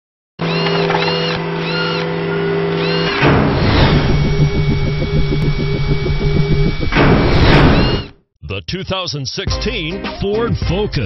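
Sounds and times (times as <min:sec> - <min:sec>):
pulsing low rumble: 0:03.2 - 0:08.1.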